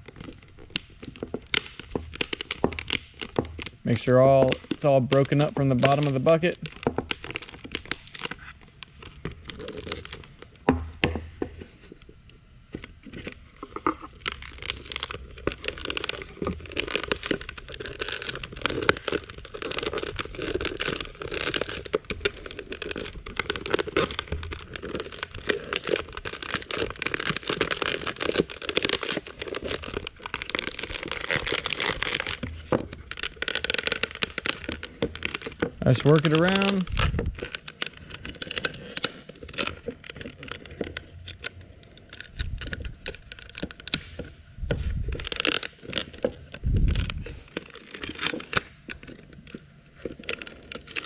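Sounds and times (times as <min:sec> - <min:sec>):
plastic bucket crackling and snapping: 0:00.0 - 0:51.0.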